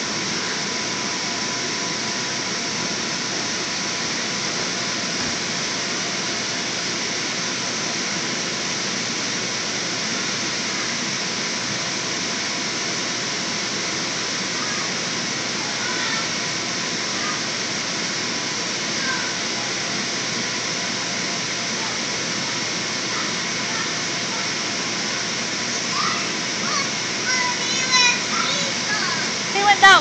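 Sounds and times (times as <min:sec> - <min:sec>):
electric blower fan rushing air: 0:00.0 - 0:30.0.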